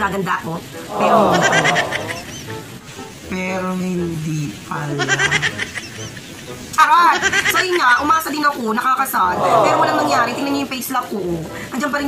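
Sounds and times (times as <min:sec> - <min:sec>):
person speaking: 0:00.9 - 0:02.3, 0:03.3 - 0:06.1, 0:09.3 - 0:10.6.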